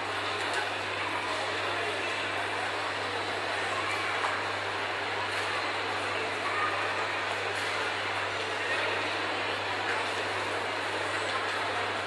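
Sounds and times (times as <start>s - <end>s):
busy shopping mall background noise: 0.0s - 12.0s.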